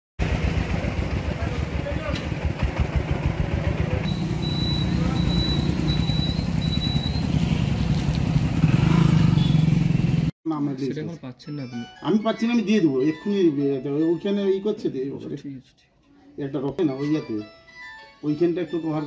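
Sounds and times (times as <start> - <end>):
vehicle engine rumbling: 0.2 - 10.3.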